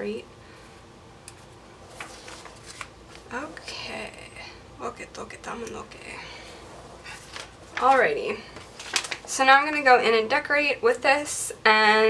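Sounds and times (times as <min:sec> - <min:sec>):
paper rustles: 0:01.9 - 0:03.3, 0:07.0 - 0:09.8.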